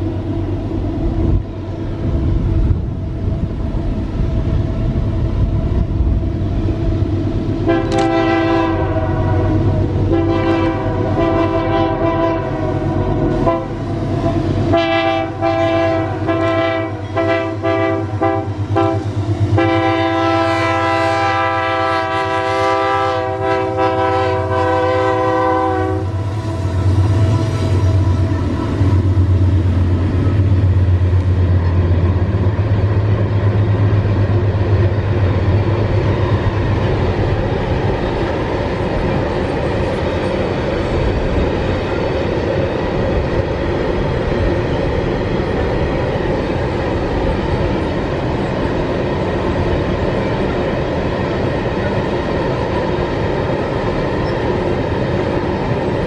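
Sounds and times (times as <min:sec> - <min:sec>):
train wagons rolling past: 0:00.0 - 0:56.0
locomotive air horn blasts: 0:07.6 - 0:29.3.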